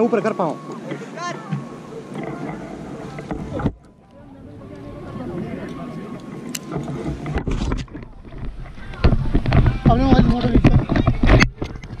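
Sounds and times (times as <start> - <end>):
wind buffeting microphone: 1.3 - 12.0.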